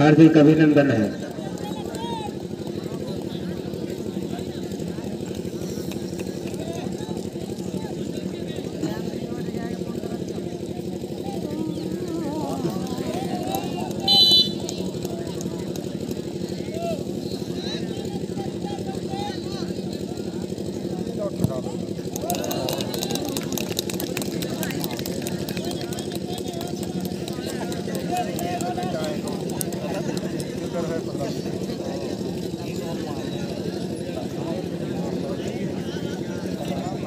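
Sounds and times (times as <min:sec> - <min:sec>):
spectators chattering: 0:00.0 - 0:37.0
referee's whistle blast: 0:14.1 - 0:14.6.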